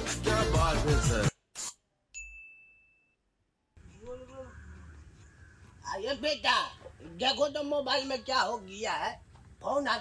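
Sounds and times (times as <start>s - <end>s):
bell-like ding: 2.1s - 3.2s.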